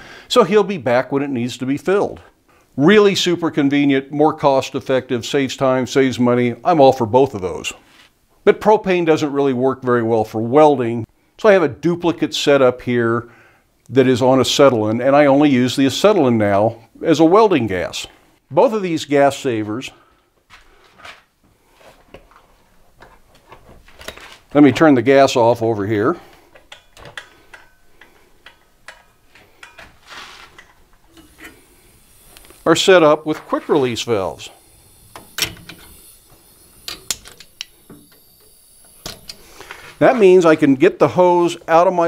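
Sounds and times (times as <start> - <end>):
faint footsteps: 19.5 - 24.8, 29.0 - 31.4, 39.4 - 40.6
metallic hose fitting clicks: 26.5 - 29.9, 36.7 - 39.7.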